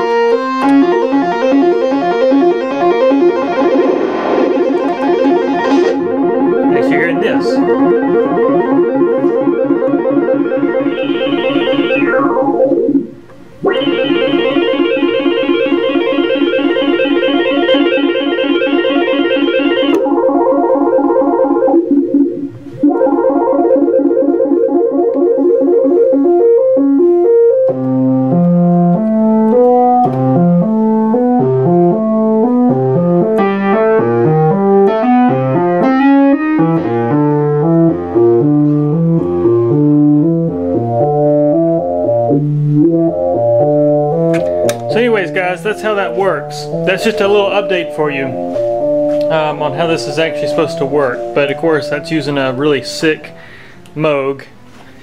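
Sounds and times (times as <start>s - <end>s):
synth bass line: 0.0s - 53.3s
buzzy synthesizer held note: 0.0s - 53.4s
synthesizer melodic pattern: 0.0s - 54.2s.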